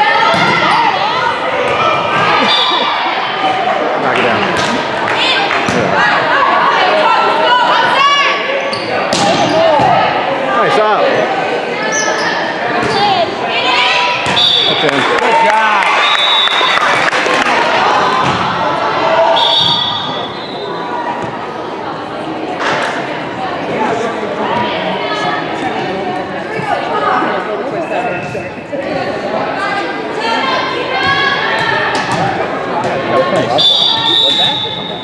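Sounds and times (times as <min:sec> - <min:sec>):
players and spectators shouting: 0:00.0 - 0:22.3, 0:28.9 - 0:35.0.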